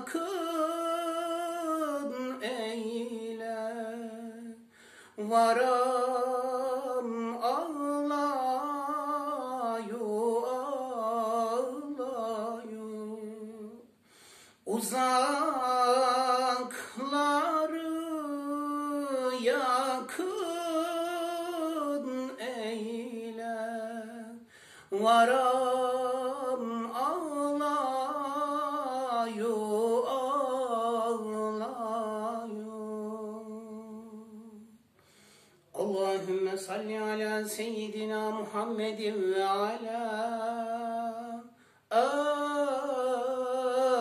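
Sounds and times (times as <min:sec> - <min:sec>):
man singing unaccompanied: 0:00.0 - 0:14.0, 0:14.6 - 0:34.8, 0:35.7 - 0:44.0.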